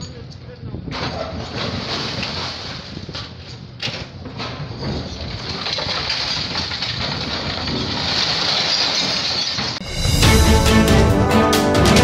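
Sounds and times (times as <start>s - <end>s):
excavator demolishing rubble: 4.6s - 9.8s
theme music with a beat: 9.8s - 12.0s.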